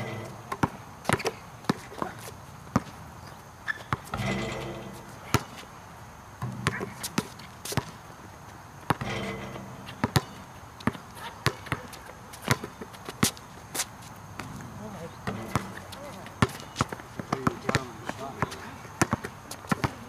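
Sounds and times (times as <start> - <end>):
basketball bouncing on hard court: 0.5 - 2.1, 3.9 - 5.6, 6.4 - 8.0, 8.9 - 13.4, 15.2 - 15.8, 16.4 - 20.0.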